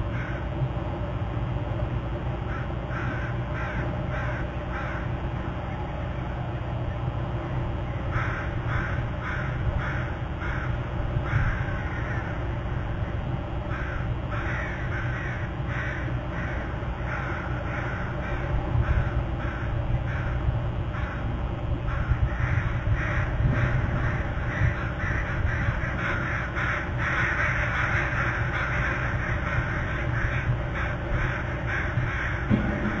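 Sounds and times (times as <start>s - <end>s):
steady low rumble: 0.0s - 33.0s.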